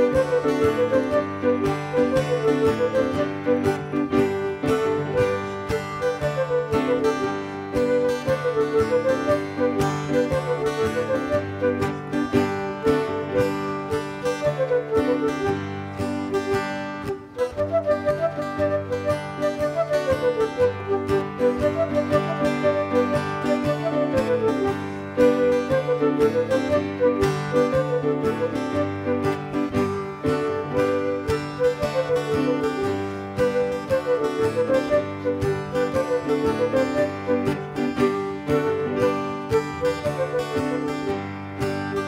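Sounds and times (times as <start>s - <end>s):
bouncing flute melody: 0.0s - 42.0s
guitar strumming steady beat: 0.0s - 42.0s.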